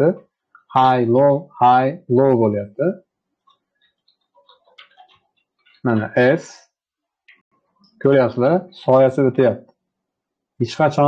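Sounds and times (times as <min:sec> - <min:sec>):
computer mouse clicks: 0:03.5 - 0:05.9.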